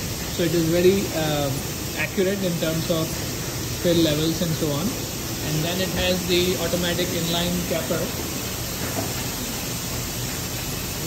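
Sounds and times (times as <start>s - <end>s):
bottle capping machine hissing: 0.0s - 11.0s.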